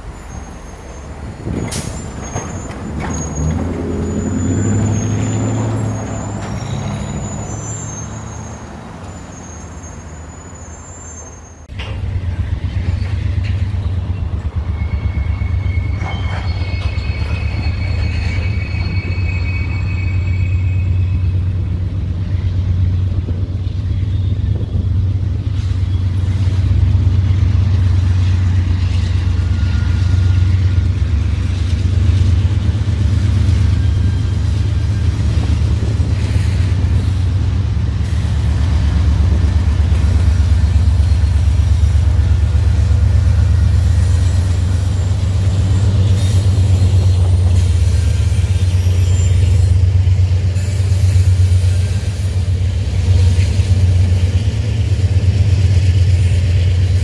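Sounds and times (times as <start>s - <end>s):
locomotive engine drone: 0.0s - 57.0s.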